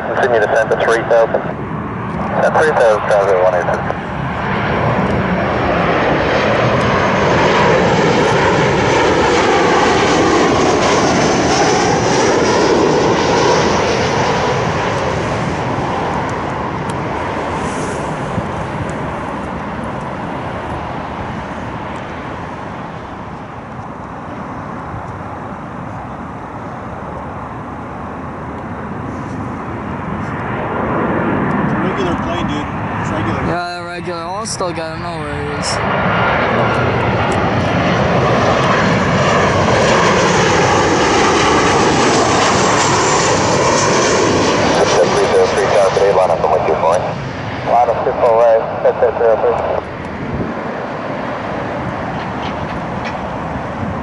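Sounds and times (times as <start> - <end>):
jet roar passing overhead: 0.0 - 54.0
second jet approaching: 0.0 - 54.0.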